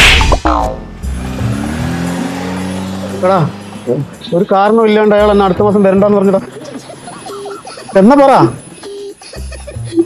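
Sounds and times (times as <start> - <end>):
car engine running: 0.5 - 9.8.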